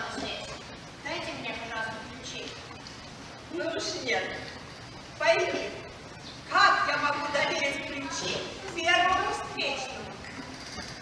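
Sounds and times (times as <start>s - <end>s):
woman speaking: 0.0s - 2.7s, 3.5s - 4.6s, 5.2s - 5.9s, 6.5s - 10.2s.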